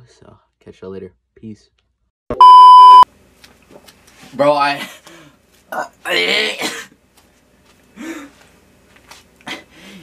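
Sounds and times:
electronic censor bleep: 2.4s - 3.0s.

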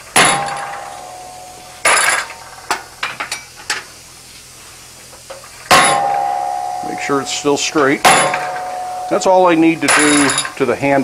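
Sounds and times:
hammer striking steel stamp: 0.2s - 2.3s, 5.7s - 10.6s.

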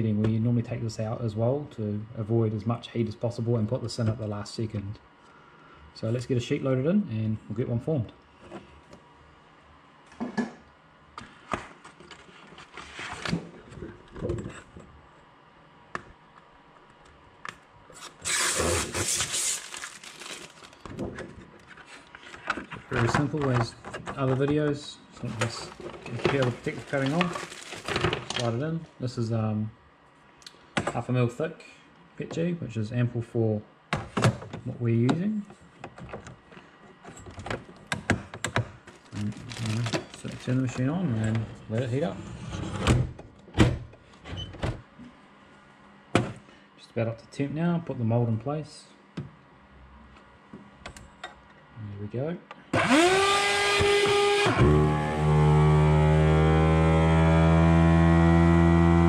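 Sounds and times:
plastic sheet rustling crackle: 18.2s - 21.0s, 25.2s - 28.5s, 38.9s - 40.8s.

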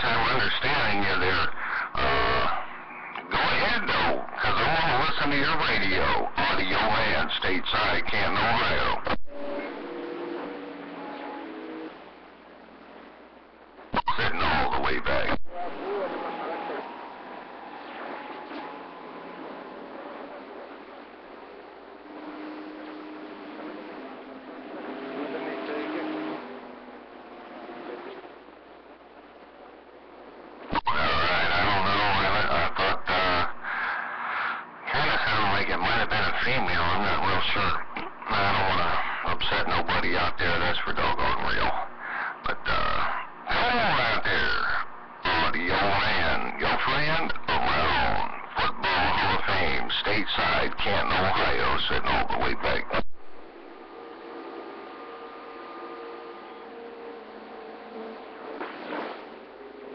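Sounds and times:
voice over radio: 0.0s - 9.8s, 14.0s - 17.0s, 30.7s - 53.1s
faint steady tones: 0.0s - 59.9s
radio static hiss: 0.0s - 59.9s
radio click: 2.9s - 3.4s, 37.8s - 38.2s.

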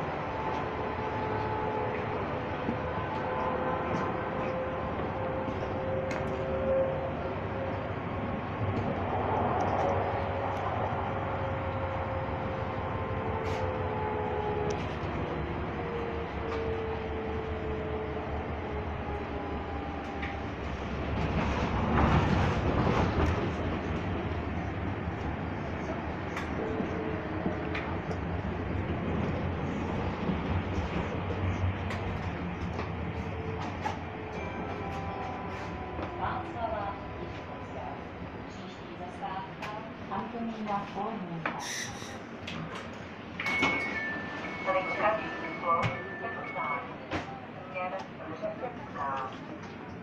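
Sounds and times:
rumble of tram wheels on rail: 0.0s - 50.0s.

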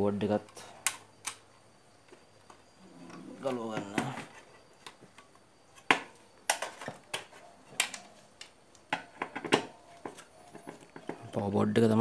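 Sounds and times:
man talking: 11.2s - 12.0s.

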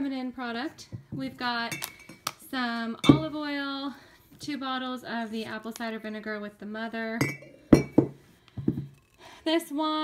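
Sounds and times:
glass bottles clinking: 1.7s - 2.3s, 3.0s - 3.4s, 7.2s - 9.0s.

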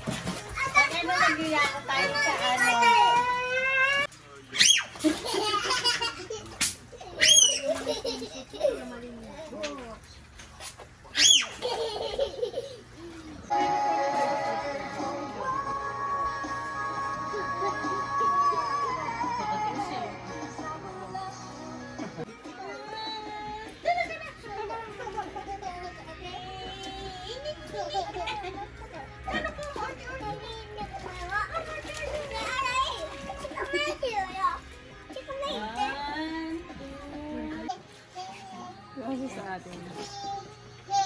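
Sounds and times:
toddler shrieking: 7.2s - 7.7s, 11.2s - 11.6s
toddler giggling: 11.6s - 13.4s
background music with held notes: 13.5s - 41.0s
toddlers babbling and calling: 22.4s - 39.0s.

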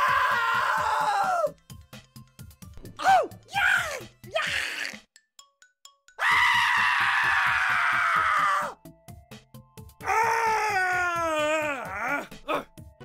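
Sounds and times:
person screaming: 0.0s - 1.5s, 3.0s - 5.0s, 6.2s - 8.8s, 10.0s - 12.7s
wailing cry: 10.0s - 12.7s.

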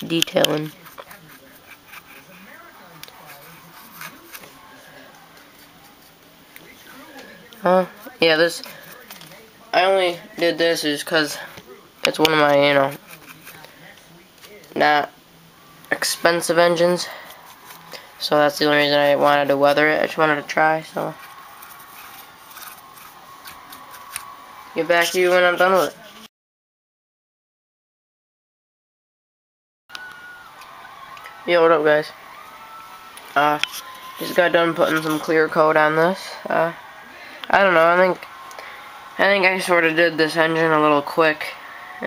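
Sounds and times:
paintbrush rubbing on plastic: 0.6s - 6.1s, 12.8s - 13.7s, 21.1s - 24.2s.

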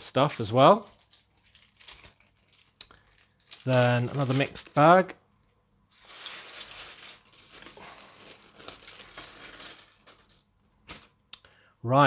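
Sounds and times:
plastic pieces clattering onto desk: 0.7s - 4.8s, 5.9s - 11.1s
plastic pieces clicking: 6.2s - 10.4s.

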